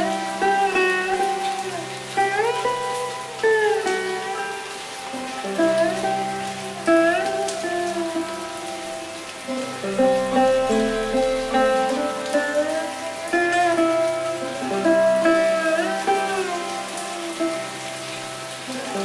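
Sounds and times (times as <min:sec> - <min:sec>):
rain: 0:00.0 - 0:19.0
sitar plucked notes: 0:00.0 - 0:19.0.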